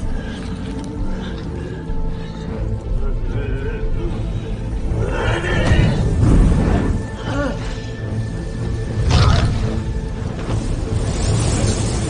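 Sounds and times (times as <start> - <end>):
dramatic film score: 0.0 - 12.0.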